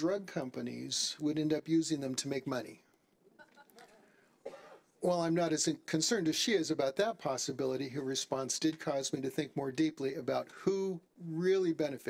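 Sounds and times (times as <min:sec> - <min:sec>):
faint room murmur: 0:00.0 - 0:12.0
faint cough: 0:04.4 - 0:04.9.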